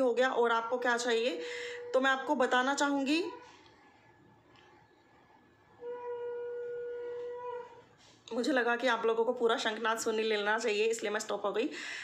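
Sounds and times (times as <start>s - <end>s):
conch shell blown: 5.8s - 7.8s.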